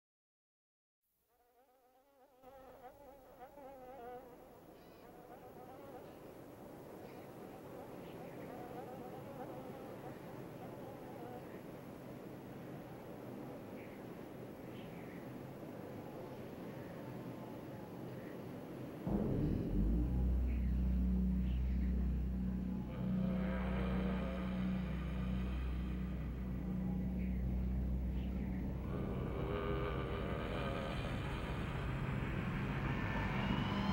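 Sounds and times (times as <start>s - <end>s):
eerie wavering drone: 19.0s - 33.9s
rising hiss: 19.0s - 33.9s.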